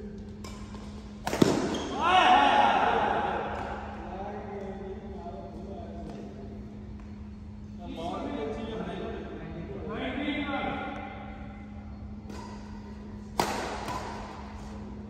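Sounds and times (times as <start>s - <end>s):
low hum: 0.0s - 15.0s
racket hitting shuttlecock: 0.4s - 2.0s, 12.2s - 14.9s
person shouting: 2.0s - 3.3s.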